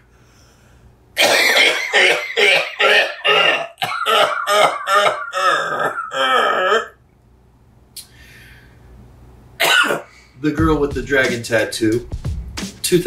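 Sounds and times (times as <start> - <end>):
man making throaty vocal noises: 1.2 - 7.0.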